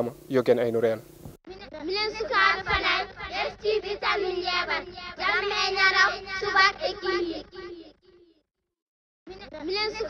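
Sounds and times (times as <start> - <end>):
faint low hum: 0.0 - 7.8.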